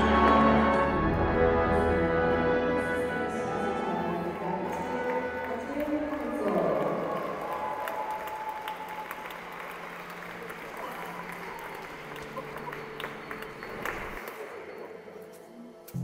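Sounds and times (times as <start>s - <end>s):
crowd applauding: 3.6s - 14.9s.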